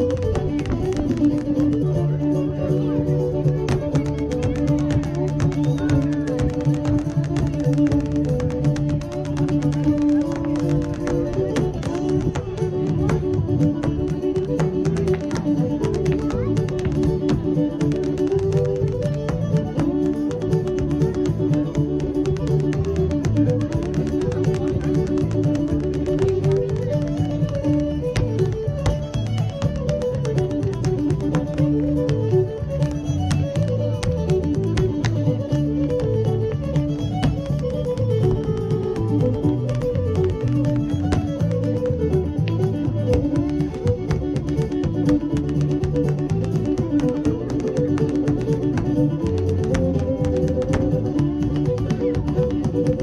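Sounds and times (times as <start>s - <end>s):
fiddle dance tune: 0.0s - 53.0s
hard-shoe dance steps: 0.0s - 53.0s.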